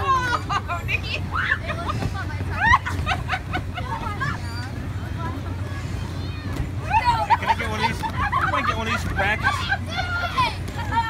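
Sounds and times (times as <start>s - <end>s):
children shouting and chattering: 0.0s - 11.0s
steady low hum: 0.0s - 11.0s.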